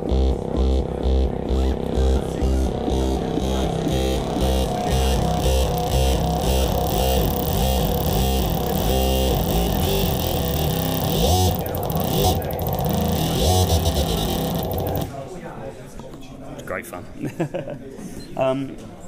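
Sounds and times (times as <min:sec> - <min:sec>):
gliding synthesizer bass: 0:00.0 - 0:15.2.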